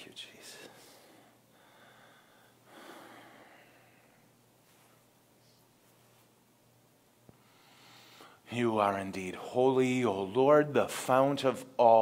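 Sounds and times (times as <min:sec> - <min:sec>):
soft breath: 0:00.4 - 0:06.4, 0:07.3 - 0:08.5.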